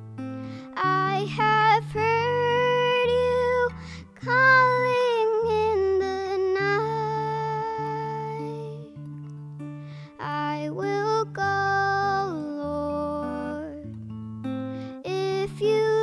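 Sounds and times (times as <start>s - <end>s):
acoustic guitar: 0.0s - 16.0s
girl singing long held notes: 0.4s - 9.1s, 10.0s - 14.0s, 14.8s - 16.0s.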